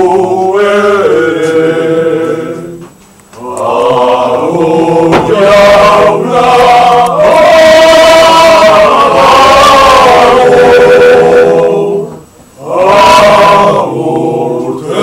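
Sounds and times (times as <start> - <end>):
slow singing in long notes: 0.0 - 15.0.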